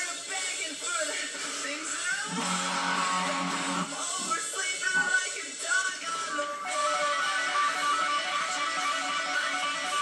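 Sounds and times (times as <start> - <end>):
electric guitar rock riff: 2.3 - 4.0.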